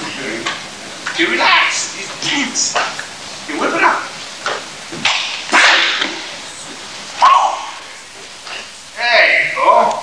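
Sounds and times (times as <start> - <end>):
person shouting: 7.2 - 7.9.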